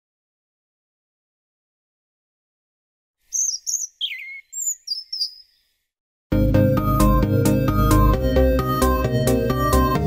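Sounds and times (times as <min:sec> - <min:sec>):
bird chirps and whistles: 0:03.3 - 0:05.7.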